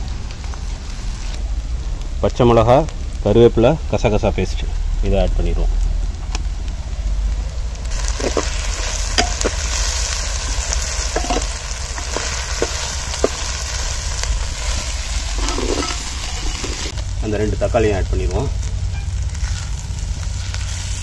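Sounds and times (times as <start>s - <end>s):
shallots sizzling in oil: 5.8s - 21.0s.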